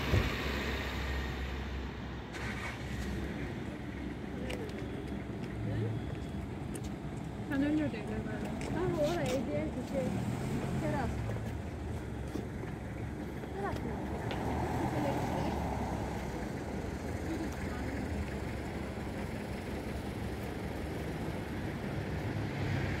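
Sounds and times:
low rumble of town ambience: 0.0 - 23.0.

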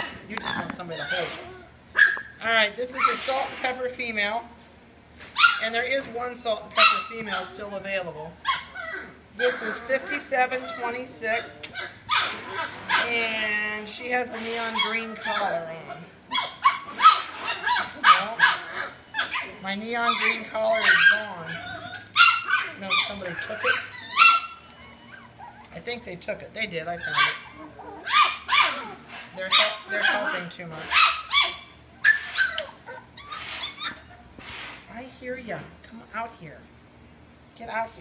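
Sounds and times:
puppies yipping and barking: 0.0 - 2.4, 5.4 - 13.3, 14.1 - 34.7.

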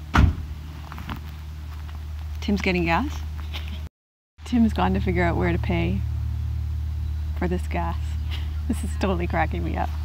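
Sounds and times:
steady low hum: 0.0 - 10.0
car door shutting: 0.1 - 1.2.

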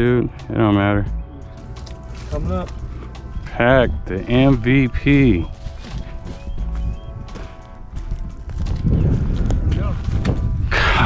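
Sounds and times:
dry grass crunching and rustling: 1.6 - 10.4.

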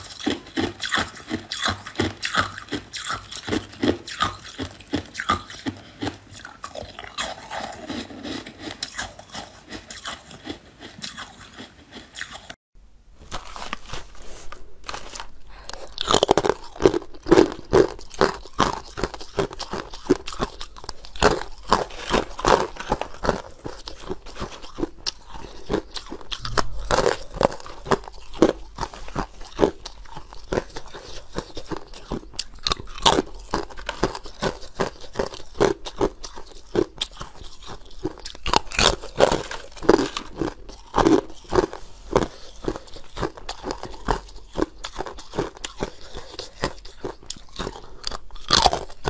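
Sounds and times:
ice crunching being chewed: 0.0 - 12.6, 13.2 - 49.0.

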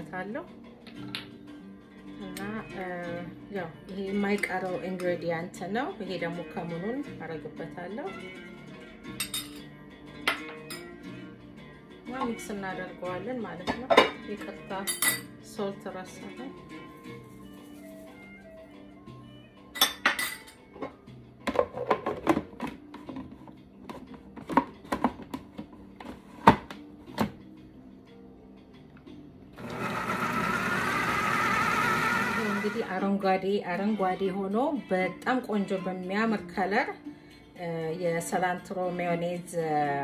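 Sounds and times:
background music: 0.0 - 40.0
food processor motor chopping: 29.6 - 32.9.

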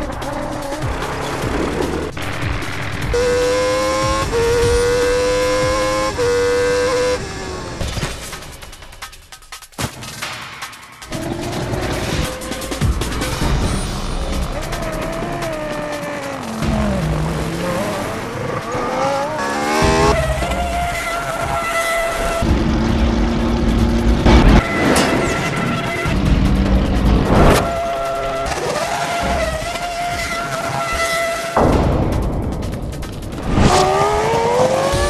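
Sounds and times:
music: 0.0 - 7.0, 7.8 - 30.8, 31.5 - 35.0
racing car engine revving: 0.0 - 8.1, 11.1 - 31.9, 32.6 - 35.0
cars going by: 11.1 - 31.6, 33.3 - 35.0.

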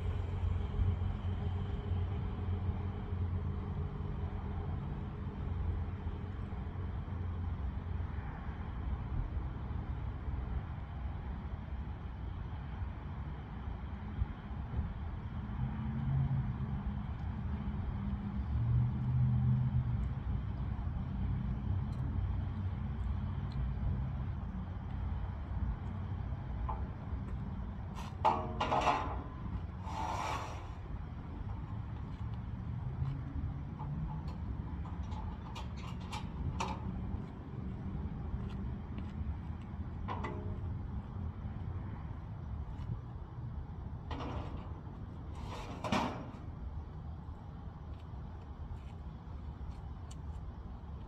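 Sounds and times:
vehicle engine rumbling: 0.0 - 51.0
metal ramp clank ringing: 28.1 - 30.7
metallic clicks and knocks: 33.0 - 37.3.

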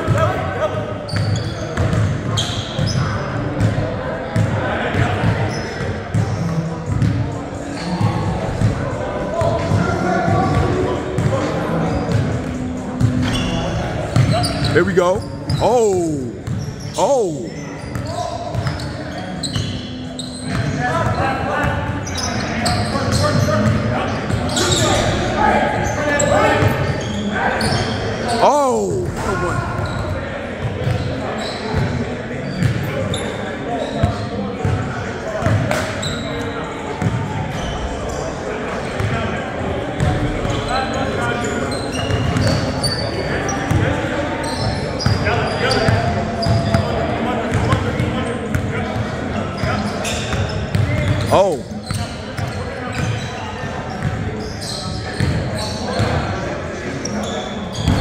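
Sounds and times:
indistinct voices echoing: 14.8 - 18.0, 28.2 - 30.1.

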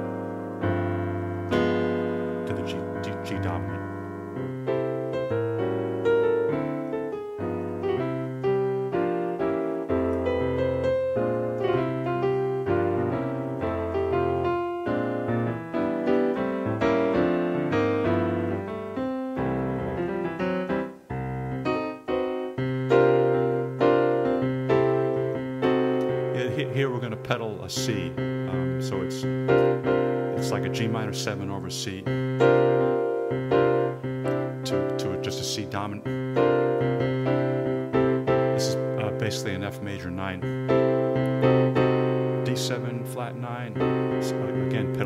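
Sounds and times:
jazz piano chords with bass line: 0.0 - 45.0.

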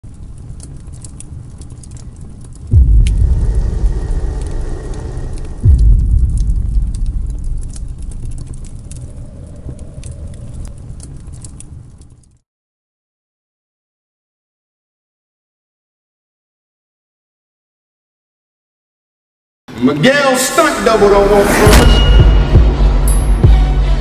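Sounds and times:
low rumble with crackles: 0.0 - 12.4
deep impact: 2.7 - 10.8.

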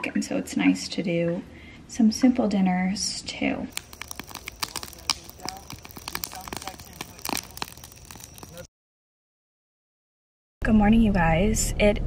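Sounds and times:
bonfire crackling and popping: 3.7 - 8.7.

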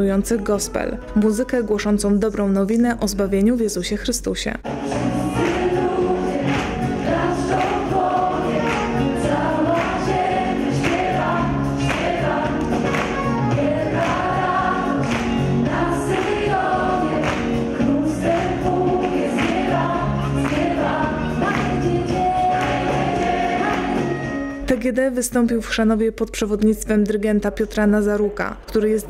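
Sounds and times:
choir singing: 4.7 - 24.6.

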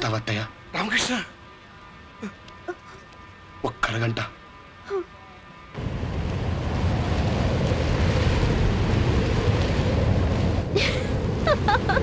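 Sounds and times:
strong wind on microphone: 5.8 - 12.0.

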